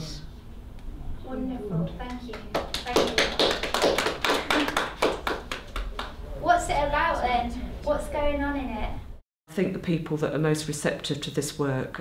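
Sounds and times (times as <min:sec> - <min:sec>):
people clapping: 0:02.1 - 0:06.2.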